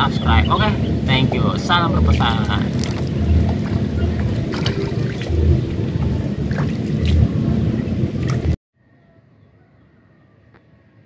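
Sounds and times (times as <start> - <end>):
wind rumbling on microphone: 0.0 - 8.6.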